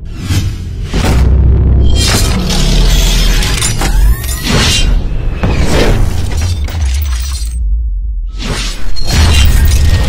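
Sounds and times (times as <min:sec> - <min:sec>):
cinematic music: 0:00.0 - 0:10.0.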